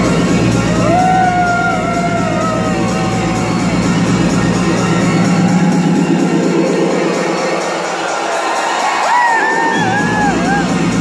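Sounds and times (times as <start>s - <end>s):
electronic dance music: 0.0s - 11.0s
crowd cheering: 0.4s - 11.0s.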